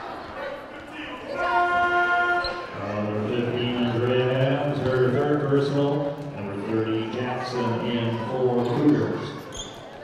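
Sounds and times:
voices in a gymnasium: 0.0 - 10.0.

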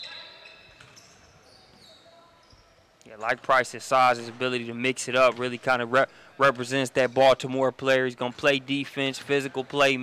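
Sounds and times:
sneakers squeaking on floor: 0.0 - 3.3.

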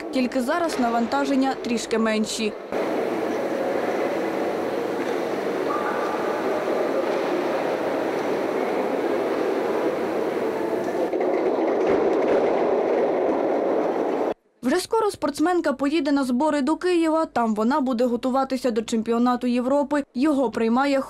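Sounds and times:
echoing swimming pool din: 0.0 - 14.4
room hum: 0.0 - 14.6
water noise: 2.5 - 11.2.

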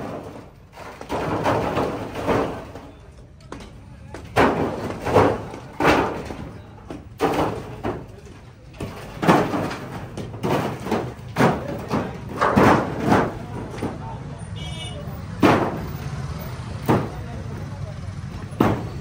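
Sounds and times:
voices: 0.0 - 19.0.

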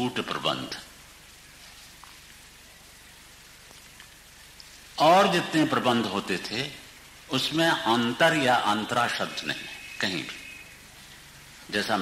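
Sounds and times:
old recording hiss: 0.0 - 12.0
faint ticks: 3.6 - 4.8.

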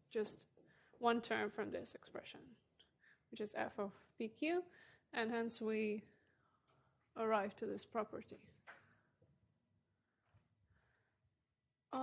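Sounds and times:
marker scratching on whiteboard: 8.0 - 10.0.

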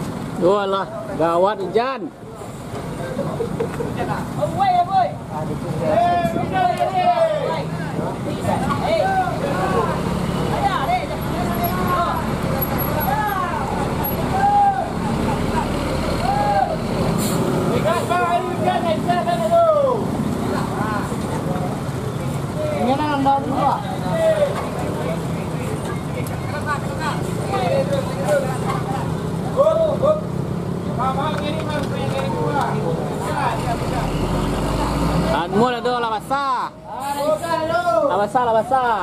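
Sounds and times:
diesel truck engine labouring: 2.1 - 38.1
men calling out: 4.4 - 16.9.

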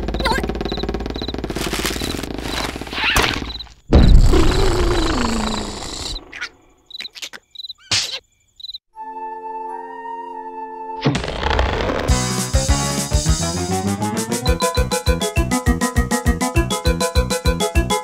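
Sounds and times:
crickets chirping: 3.4 - 8.8.

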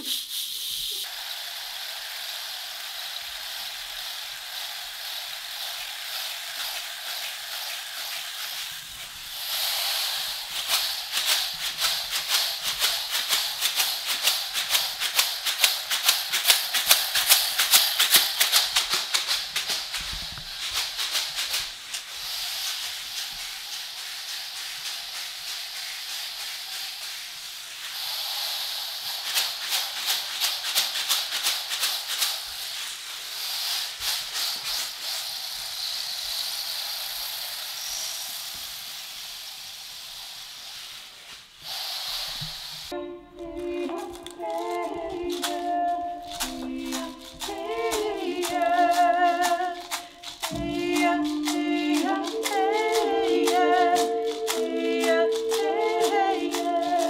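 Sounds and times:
rain stick rattling: 0.0 - 41.1, 42.2 - 57.0.

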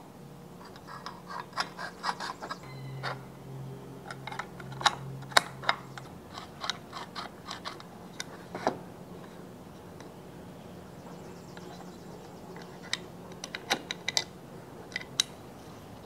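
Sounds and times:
low steady hum: 0.0 - 16.0
metal lock parts clicking: 0.6 - 3.2, 4.1 - 8.8, 12.6 - 14.3, 14.9 - 15.4.

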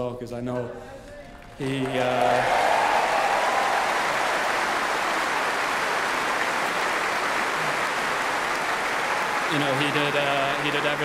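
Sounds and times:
crowd applauding: 1.0 - 11.0.

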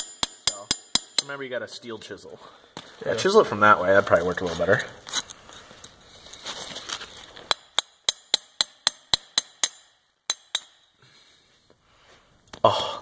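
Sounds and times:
hammer striking chisel: 0.0 - 1.4, 7.5 - 10.9.

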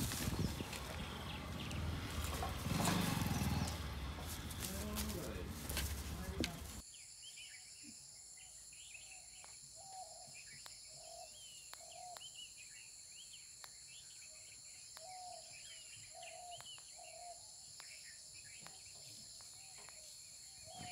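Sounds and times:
birds chirping and calling: 0.0 - 7.8, 14.0 - 20.9.

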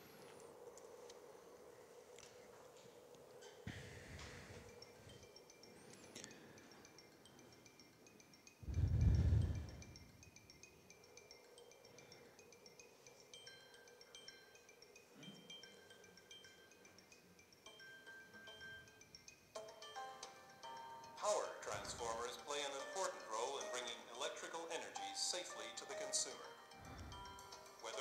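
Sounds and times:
chime-like music over loudspeakers: 4.2 - 28.0.

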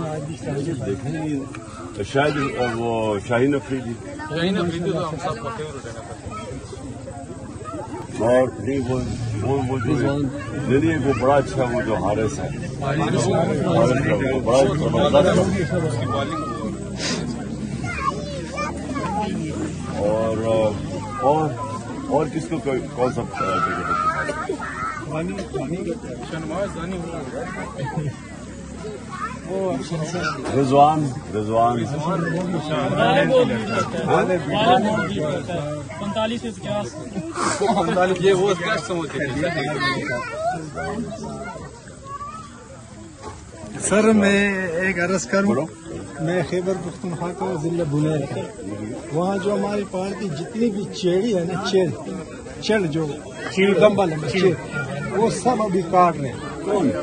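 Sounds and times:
boys and men talking: 0.0 - 57.0.

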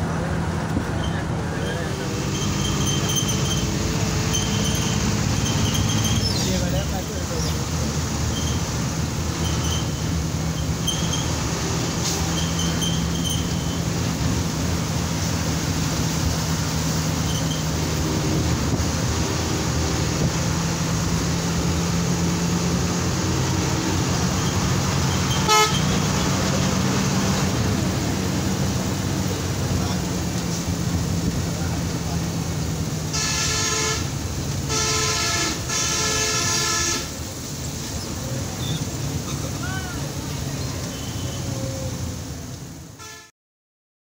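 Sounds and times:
diesel engine running: 0.0 - 42.8
horn sounding: 24.4 - 26.4, 33.1 - 37.3, 43.0 - 43.3.

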